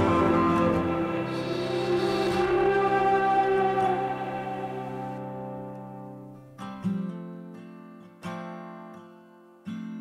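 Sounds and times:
instrumental music with held chords: 0:00.0 - 0:10.0.

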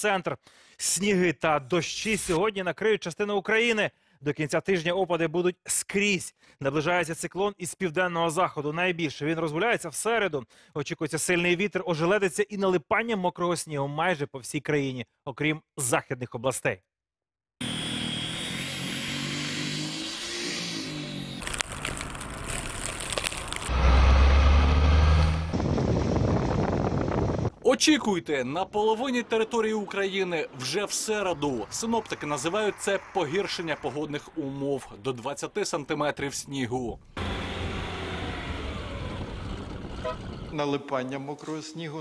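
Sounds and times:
tyre and road noise: 0:17.6 - 0:27.6, 0:37.0 - 0:40.6
engine humming: 0:21.0 - 0:27.4, 0:37.0 - 0:40.6
deep engine rumble: 0:21.4 - 0:27.5, 0:37.0 - 0:40.6
wind blowing: 0:21.5 - 0:35.0, 0:36.9 - 0:40.6
vehicle engine running under load: 0:37.2 - 0:40.6.

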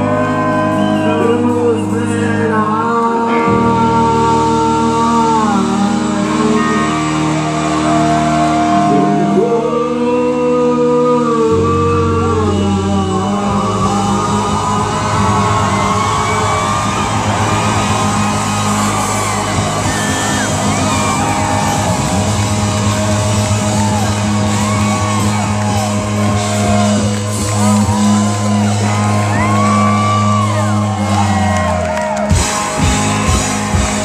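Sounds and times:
person singing long notes: 0:00.0 - 0:31.9
drums: 0:00.0 - 0:34.0
electric guitars: 0:00.0 - 0:34.0
live rock band playing: 0:00.0 - 0:34.0
shouts and whoops: 0:06.6 - 0:09.7, 0:13.6 - 0:33.3.

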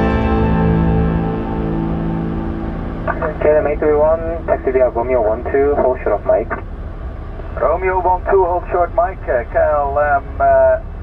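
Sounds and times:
steady low rumble: 0:00.0 - 0:11.0
radio transmissions: 0:03.0 - 0:06.7, 0:07.5 - 0:10.9.

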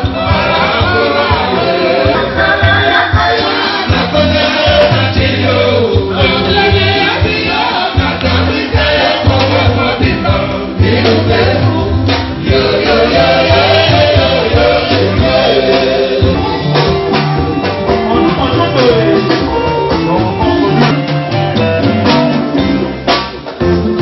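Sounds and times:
voices singing together: 0:00.0 - 0:21.1
band with pulsing bass line: 0:00.0 - 0:24.0.

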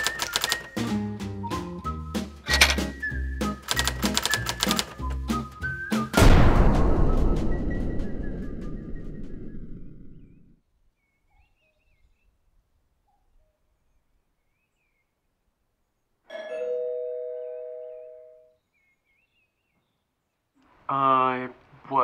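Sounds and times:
doorbell chime: 0:16.3 - 0:18.6.

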